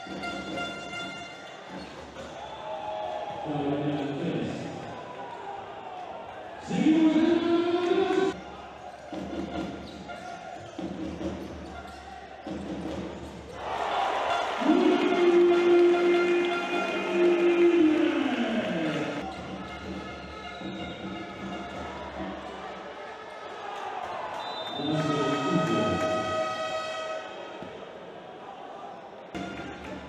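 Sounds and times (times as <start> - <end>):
crowd noise: 0.0 - 30.0.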